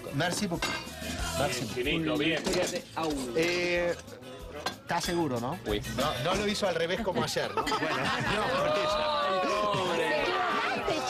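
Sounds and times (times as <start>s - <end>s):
metal utensils clinking on pots: 0.0s - 6.7s.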